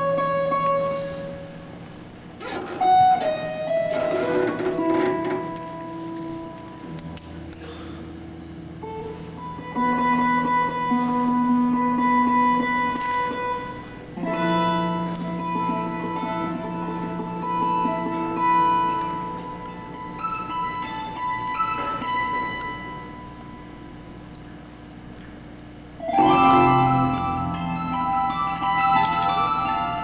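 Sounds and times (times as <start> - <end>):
harp guitar plucked notes: 0.0 - 1.8, 2.4 - 7.6, 8.8 - 24.3, 26.0 - 30.0.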